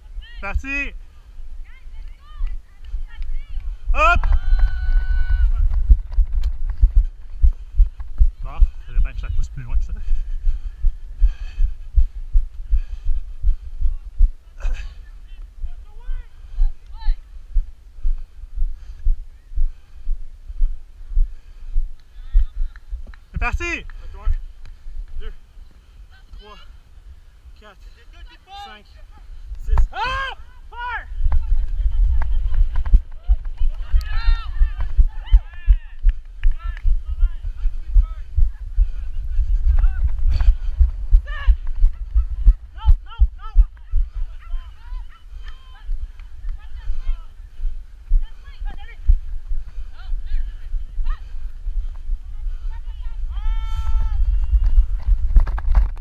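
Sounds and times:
wind rumble on microphone: 0:01.3 - 0:23.4, 0:30.6 - 0:56.0
microphone jostling: 0:02.3 - 0:19.7, 0:31.0 - 0:56.0
person shouting: 0:03.9 - 0:05.6, 0:29.9 - 0:31.1.

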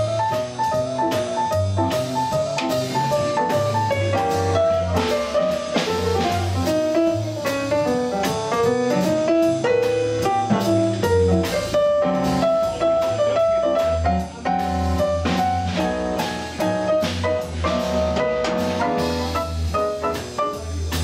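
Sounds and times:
double bass: 0:00.0 - 0:21.0
drum kit: 0:00.0 - 0:21.0
piano solo in quick runs: 0:00.0 - 0:21.0.

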